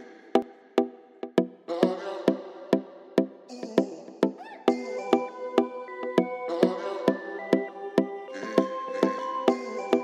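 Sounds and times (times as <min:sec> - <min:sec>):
dancehall instrumental beat: 0:00.0 - 0:10.0.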